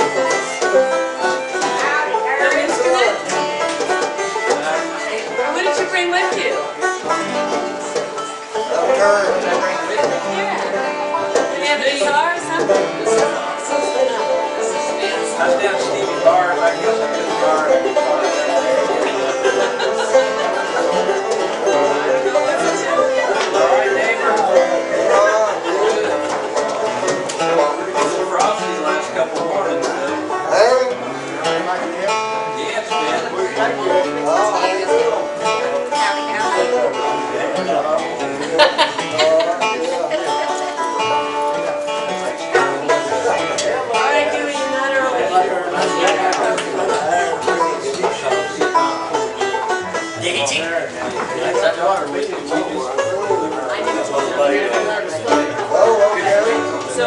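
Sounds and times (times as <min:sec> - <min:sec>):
banjo: 0:00.0 - 0:57.0
guitar: 0:00.0 - 0:57.0
upright bass: 0:00.0 - 0:57.0.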